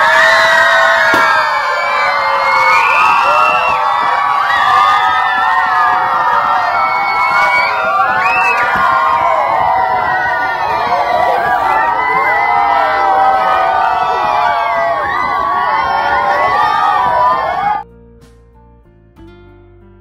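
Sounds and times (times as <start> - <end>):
children cheering and shouting: 0.0 - 17.8.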